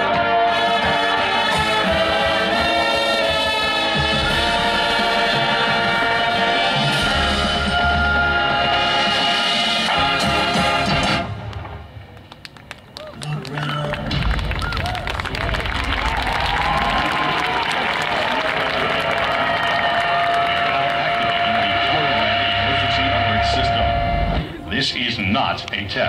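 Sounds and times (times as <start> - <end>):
many voices singing: 0.0 - 11.1
marching band chord: 0.0 - 11.8, 16.6 - 25.2
low drone: 19.9 - 25.0
high held note: 20.2 - 25.0.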